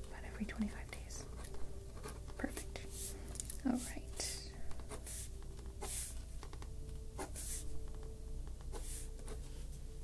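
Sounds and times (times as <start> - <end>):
pen writing on paper: 1.2 - 3.1, 4.8 - 6.6, 7.2 - 7.7, 8.6 - 9.4.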